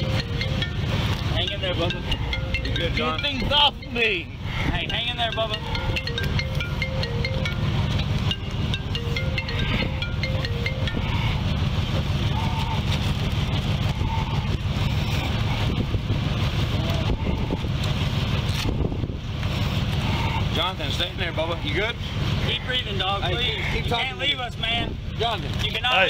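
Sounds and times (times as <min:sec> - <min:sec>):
vehicle idling rumble: 0:00.0 - 0:26.0.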